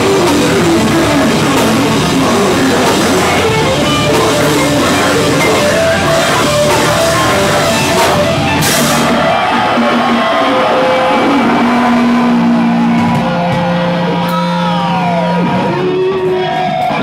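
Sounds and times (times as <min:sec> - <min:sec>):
distorted electric guitars sustaining: 0:00.0 - 0:17.0.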